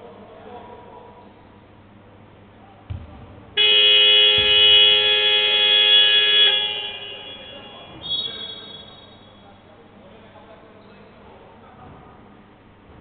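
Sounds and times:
scoreboard buzzer blare: 0:03.6 - 0:09.3.

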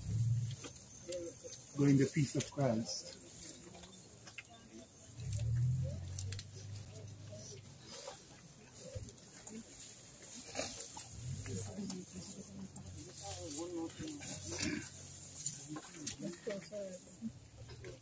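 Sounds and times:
low voices of group: 0:00.0 - 0:18.0.

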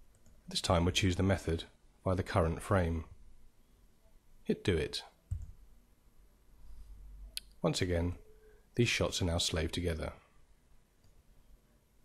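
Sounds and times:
person speaking: 0:00.5 - 0:03.1, 0:08.8 - 0:10.2.

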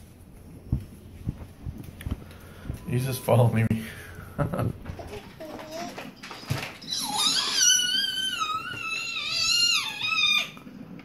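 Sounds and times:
infant squealing: 0:06.8 - 0:10.6.

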